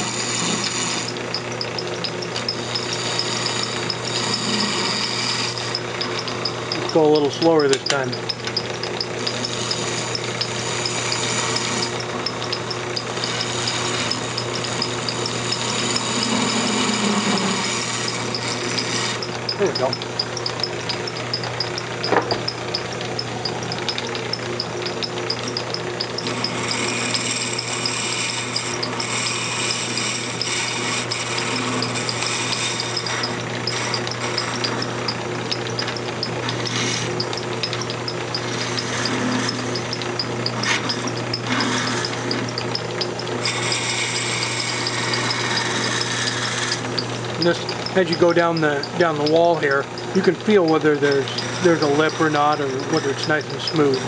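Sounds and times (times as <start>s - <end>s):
wood lathe motor hum: 0.0s - 54.0s
scraper cutting wood: 12.9s - 20.2s.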